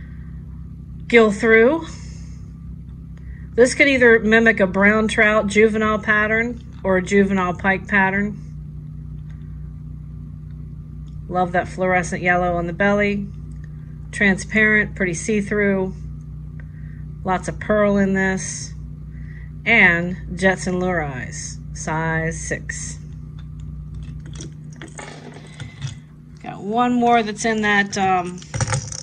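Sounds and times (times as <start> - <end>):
low machine hum: 0.0 - 29.0.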